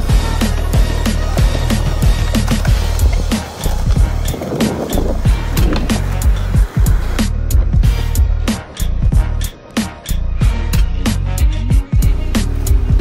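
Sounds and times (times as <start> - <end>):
music with heavy bass beat: 0.0 - 13.0
skateboard rolling on concrete: 0.0 - 13.0
skateboard popping and landing: 0.4 - 6.5.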